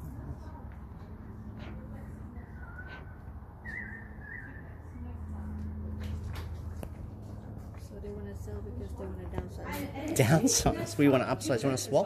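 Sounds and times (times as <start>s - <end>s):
high wavering whistle-like tone: 2.5s - 4.9s.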